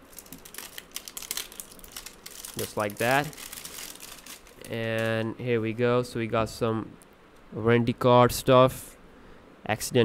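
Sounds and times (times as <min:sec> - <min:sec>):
plastic film crinkling: 0:00.0 - 0:05.4.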